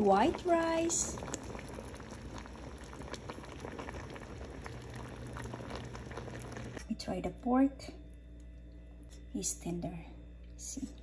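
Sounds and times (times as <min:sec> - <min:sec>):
broth simmering with bubbles popping: 0:00.0 - 0:06.9.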